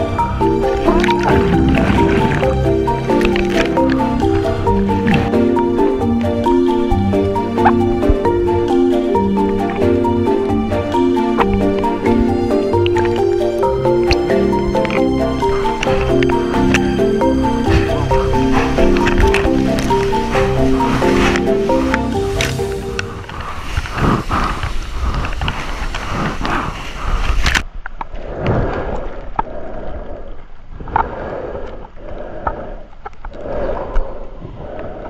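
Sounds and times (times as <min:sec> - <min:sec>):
music with held notes: 0:00.0 - 0:23.3
water rushing and splashing: 0:00.0 - 0:27.6.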